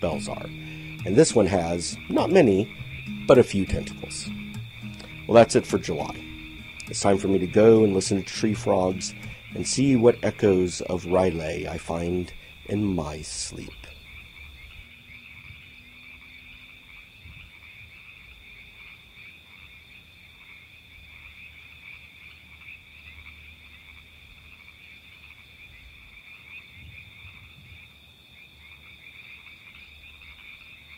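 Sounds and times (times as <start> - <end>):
tree frogs trilling: 0.0 - 30.9.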